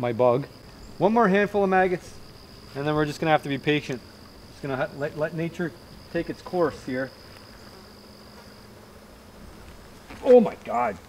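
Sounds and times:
flies buzzing faintly: 0:00.0 - 0:11.0
high-pitched insect call: 0:00.0 - 0:11.0.

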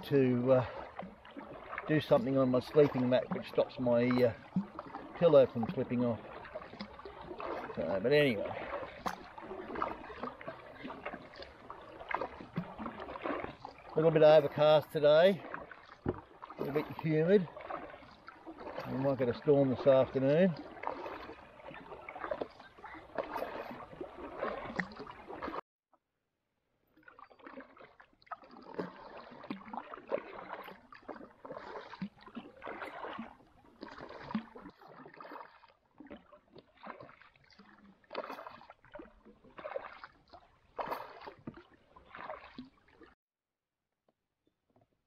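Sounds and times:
paddle strokes in water: 0:00.0 - 0:25.6, 0:26.9 - 0:43.2.

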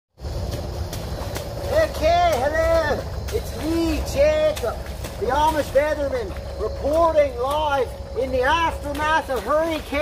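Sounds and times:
man speaking: 0:01.7 - 0:10.0.

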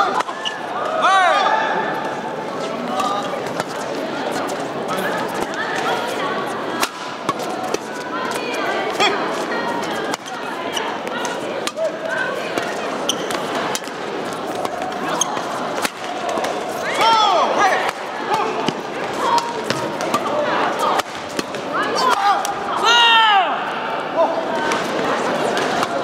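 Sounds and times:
voices in a hall: 0:00.0 - 0:26.0
racket hitting shuttlecock: 0:06.8 - 0:08.4
shoe squeaks on court floor: 0:13.0 - 0:13.5.

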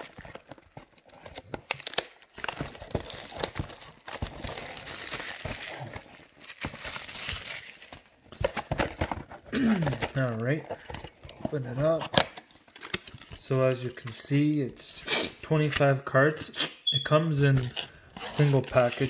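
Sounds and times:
shrink wrap tearing and crinkling: 0:00.0 - 0:08.2, 0:09.6 - 0:14.1, 0:17.4 - 0:19.0.

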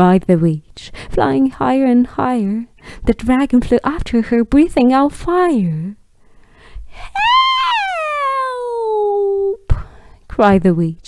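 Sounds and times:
woman wailing: 0:07.0 - 0:09.6.

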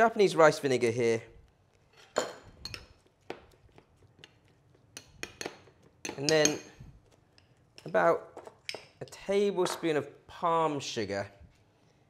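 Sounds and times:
spoon scraping: 0:01.5 - 0:09.9
metal spoon clinking on ceramic bowl: 0:02.0 - 0:03.0, 0:05.0 - 0:06.8.

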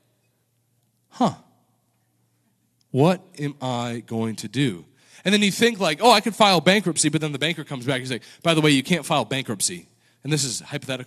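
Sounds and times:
man sighing: 0:01.2 - 0:01.4.

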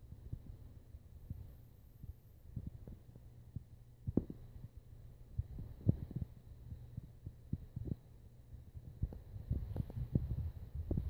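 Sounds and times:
steady low hum: 0:00.0 - 0:11.0
soft footsteps: 0:05.3 - 0:11.0.

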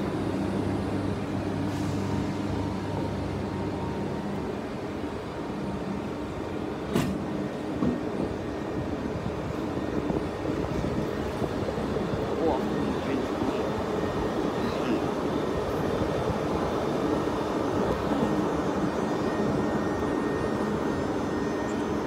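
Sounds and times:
electric locomotive hum: 0:00.0 - 0:22.0
train coaches rumbling by: 0:00.0 - 0:22.0.

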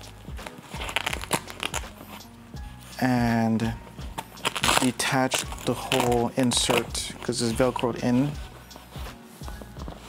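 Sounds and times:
velcro and fabric crackling: 0:00.0 - 0:02.3, 0:03.7 - 0:10.0.

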